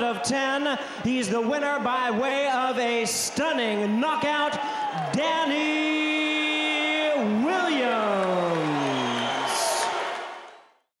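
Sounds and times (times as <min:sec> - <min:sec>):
crowd noise: 0:00.0 - 0:10.8.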